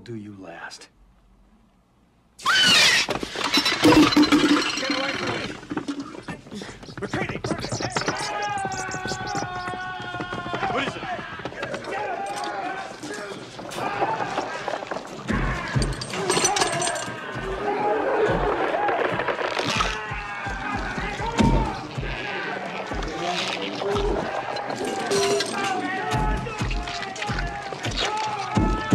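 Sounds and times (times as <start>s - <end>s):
chaotic voices: 2.4s - 28.9s.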